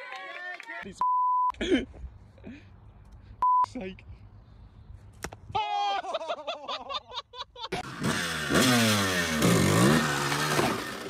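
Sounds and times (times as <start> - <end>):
censor bleeps: 1.0 - 1.5, 3.4 - 3.7.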